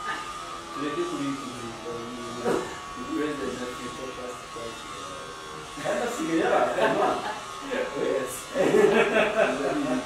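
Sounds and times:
high-pitched electrical buzz: 0.0 - 10.0
men talking into a microphone: 0.8 - 4.8, 5.7 - 10.0.

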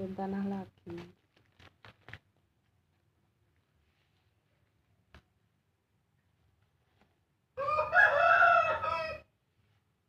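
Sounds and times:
rooster crowing: 7.6 - 9.3.

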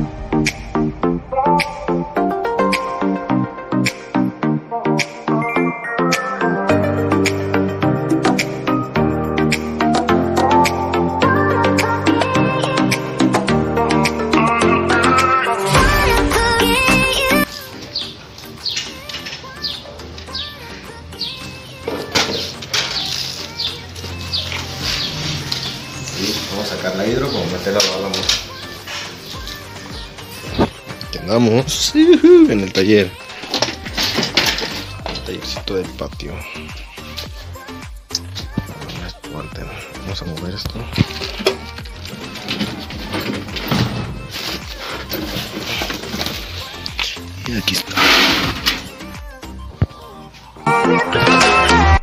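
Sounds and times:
music playing: 0.0 - 52.0
birds chirping: 17.2 - 33.0
plastic crate scraping on floor: 47.8 - 48.9.

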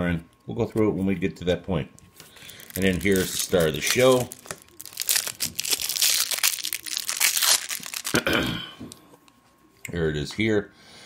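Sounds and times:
plastic wrapping crinkling and tearing: 2.2 - 9.0.

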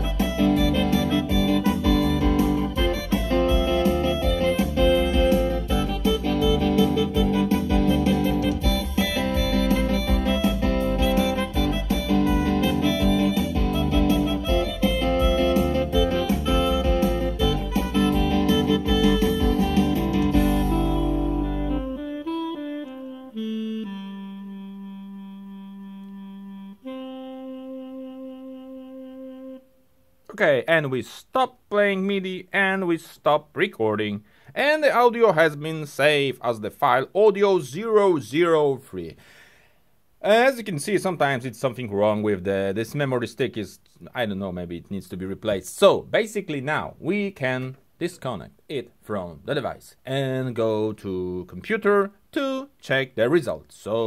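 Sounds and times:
rock song on keyboard: 0.0 - 22.0
held keyboard chord: 0.0 - 29.8.

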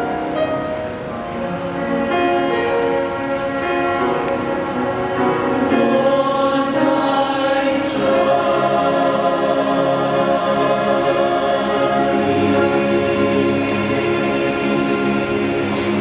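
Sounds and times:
choir singing a hymn: 0.0 - 16.0
violins: 0.0 - 16.0.

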